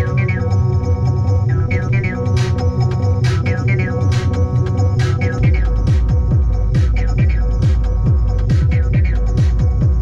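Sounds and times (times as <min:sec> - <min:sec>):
low held synth drone: 0:00.0 - 0:10.0
deep kick drum: 0:05.1 - 0:10.0.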